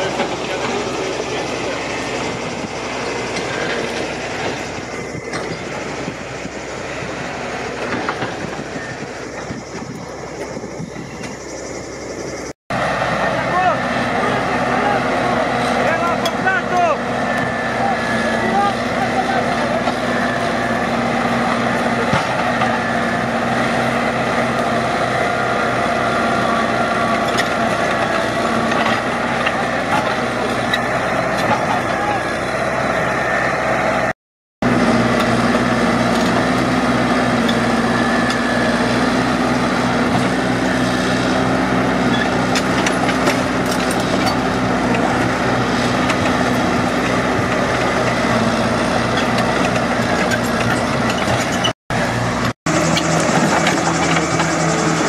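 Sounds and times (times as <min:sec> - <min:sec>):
diesel engine running: 0:00.0 - 0:55.0
tracked machine pushing through brush: 0:00.0 - 0:55.0.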